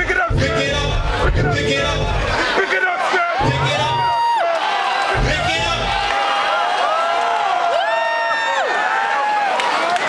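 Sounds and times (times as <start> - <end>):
crowd cheering and whooping: 2.0 - 10.0.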